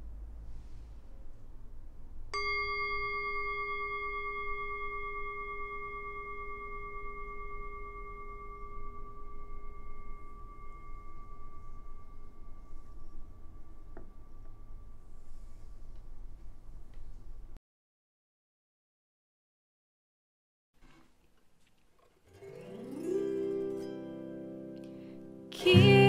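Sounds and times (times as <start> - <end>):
metal singing bowl ringing: 2.3 - 16.0.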